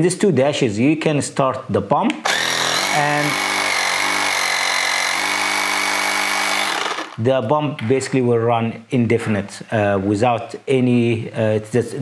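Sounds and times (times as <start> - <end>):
air pump motor drone with whine: 2.3 - 7.2.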